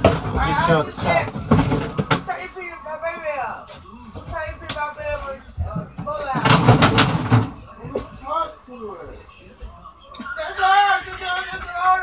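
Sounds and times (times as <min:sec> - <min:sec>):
rapid knocks and clatter: 0:04.2 - 0:08.1.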